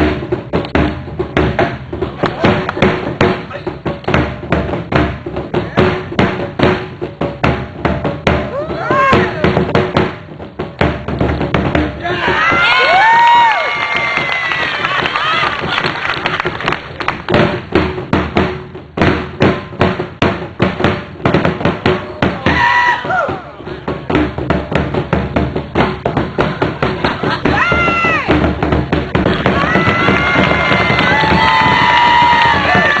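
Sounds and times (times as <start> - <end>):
drums beaten with sticks: 0.0 - 33.0.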